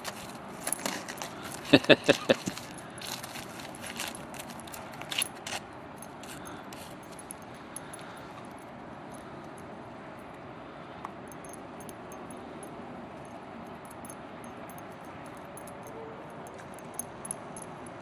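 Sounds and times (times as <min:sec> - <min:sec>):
dog paws scratching icy snow: 0:00.0 - 0:05.7.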